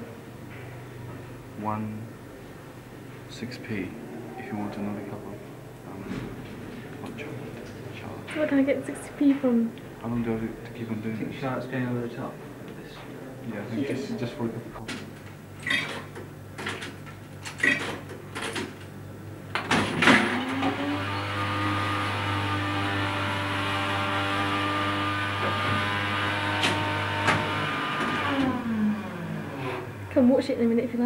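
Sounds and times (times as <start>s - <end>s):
vending machine motor hum: 0.0s - 31.0s.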